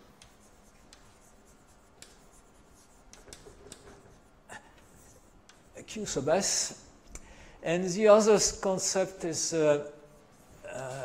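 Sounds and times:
chalk scratching on blackboard: 0.0s - 6.7s.

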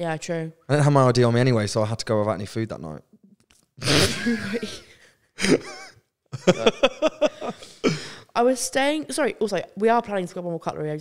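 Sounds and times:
woman laughing breathily: 4.0s - 8.2s.

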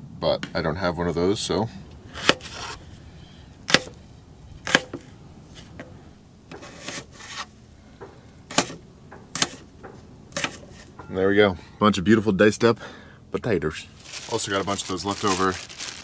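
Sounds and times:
knife scraping board: 2.1s - 2.8s, 6.5s - 7.5s, 10.4s - 10.9s.

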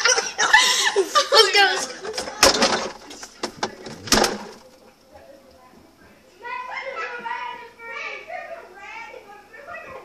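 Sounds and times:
children laughing: 0.0s - 2.6s.

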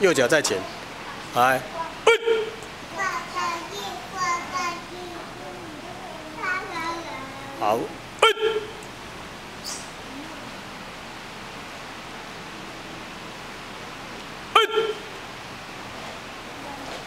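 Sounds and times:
room noise hiss: 0.0s - 17.0s
sharp shouts: 2.1s - 2.6s, 8.2s - 8.8s, 14.6s - 15.1s.

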